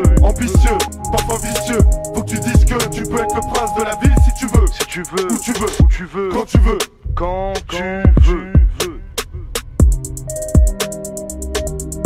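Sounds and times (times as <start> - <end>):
deep bass kicks: 0.0 - 4.8, 6.6 - 10.8
ticking hi-hats: 0.0 - 6.0, 6.6 - 12.0
man rapping over a beat: 0.0 - 9.7.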